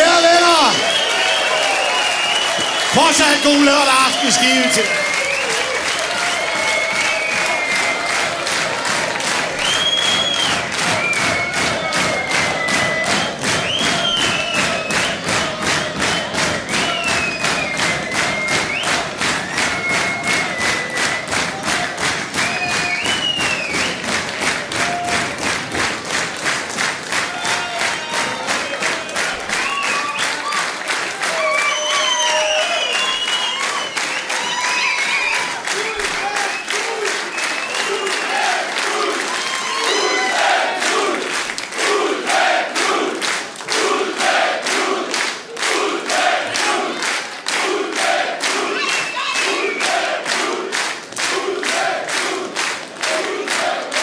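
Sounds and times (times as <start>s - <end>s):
audience clapping in unison: 0.0s - 54.0s
whistles: 0.6s - 3.4s, 4.5s - 8.3s, 9.6s - 21.6s, 22.3s - 24.1s, 29.5s - 30.6s, 31.3s - 38.6s, 48.8s - 50.1s
people shouting: 37.9s - 41.2s.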